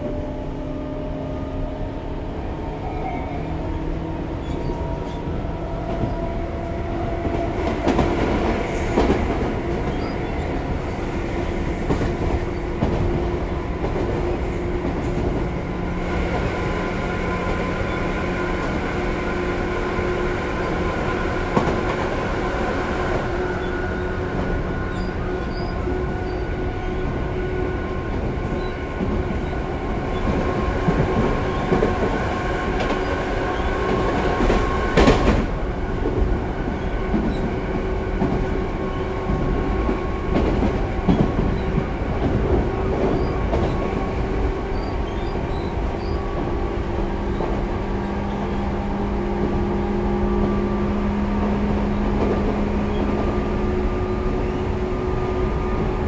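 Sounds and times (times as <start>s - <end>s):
electric train rumble: 0.0s - 56.0s.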